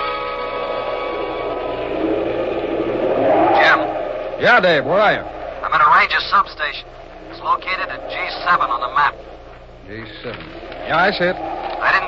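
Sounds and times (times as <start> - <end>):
falling radio squeal: 0.0 - 6.6, 10.9 - 12.0
radio static hiss: 3.6 - 12.0.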